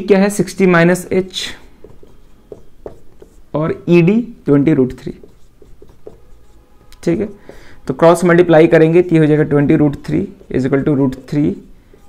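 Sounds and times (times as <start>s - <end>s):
marker writing on whiteboard: 0.9s - 4.0s, 4.6s - 8.2s, 9.0s - 12.0s
man speaking: 7.0s - 11.7s.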